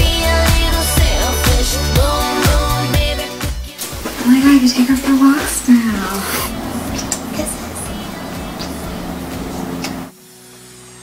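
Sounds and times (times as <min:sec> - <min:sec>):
background music held chord: 0:00.0 - 0:11.0.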